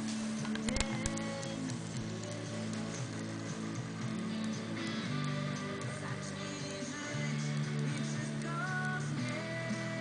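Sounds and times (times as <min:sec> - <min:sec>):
radio music through speakers: 0:00.0 - 0:10.0.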